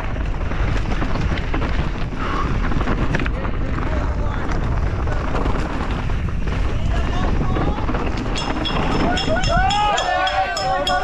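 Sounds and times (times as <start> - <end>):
bike and tyres rattling: 0.0 - 11.0
wind rushing on microphone: 0.0 - 11.0.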